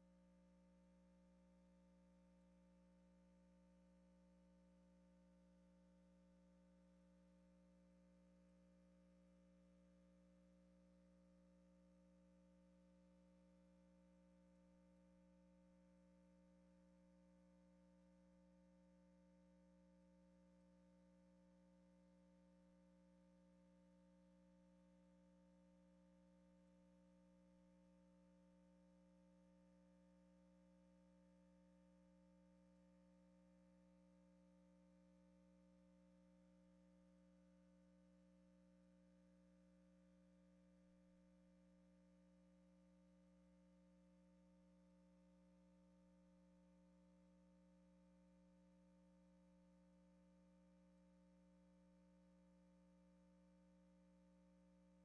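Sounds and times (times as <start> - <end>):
faint steady hum: 0.0 - 55.0.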